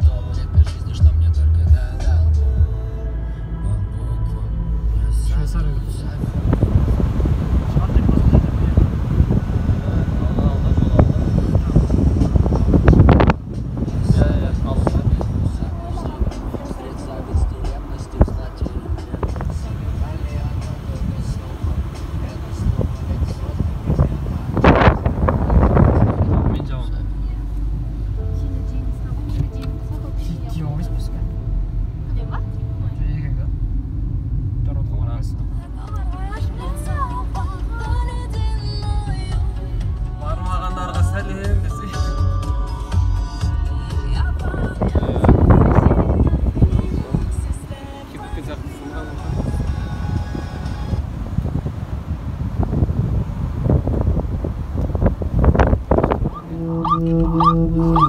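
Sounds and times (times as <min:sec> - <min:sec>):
car road noise: 0:00.0 - 0:58.0
tyre and engine rumble: 0:00.0 - 0:58.0
wind buffeting microphone: 0:06.0 - 0:30.4, 0:44.1 - 0:58.0
voice with gliding pitch: 0:56.2 - 0:58.0.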